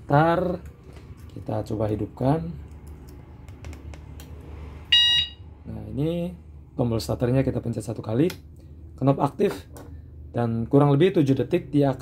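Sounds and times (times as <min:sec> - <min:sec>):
motorcycle alarm beep: 0:04.9 - 0:05.5.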